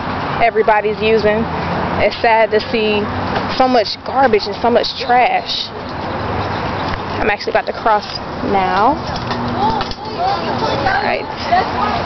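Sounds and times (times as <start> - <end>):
faint voices talking: 0.0 - 12.0
steady outdoor noise: 0.0 - 12.0.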